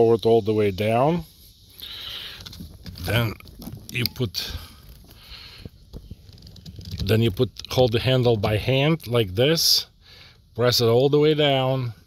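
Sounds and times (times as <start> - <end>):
faint rustling: 1.2 - 8.6.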